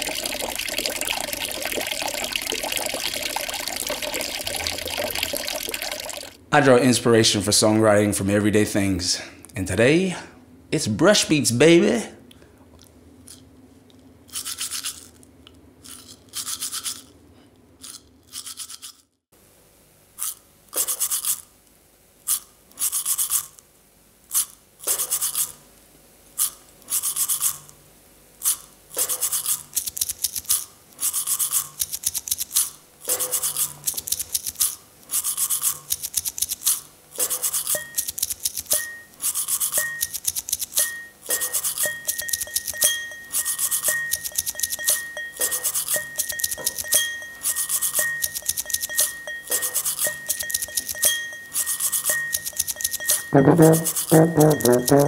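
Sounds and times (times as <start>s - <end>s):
toothbrush scrubbing teeth: 0.0s - 6.4s, 14.3s - 15.2s, 15.8s - 17.1s, 17.8s - 19.0s, 20.2s - 21.5s, 22.3s - 23.6s, 24.3s - 25.6s, 26.4s - 27.7s, 28.4s - 55.0s
short high tone: 53.2s - 55.0s.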